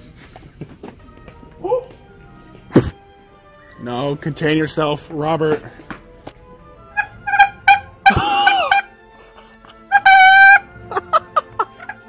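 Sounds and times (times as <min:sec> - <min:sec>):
noisemaker horn-like honks: 0:06.9 - 0:09.0.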